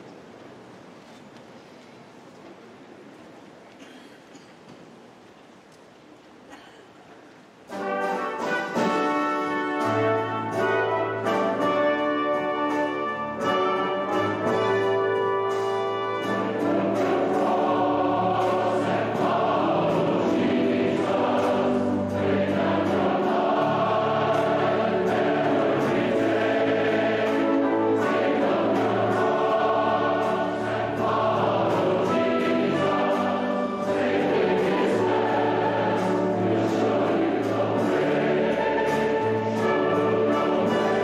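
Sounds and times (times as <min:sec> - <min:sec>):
orchestra playing: 0:07.7 - 0:41.0
choir singing: 0:07.8 - 0:41.0.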